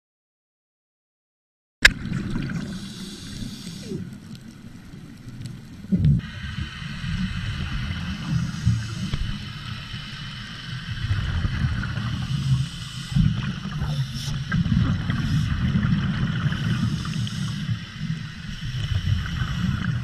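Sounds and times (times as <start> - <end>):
muffled underwater rumble: 1.8 - 20.0.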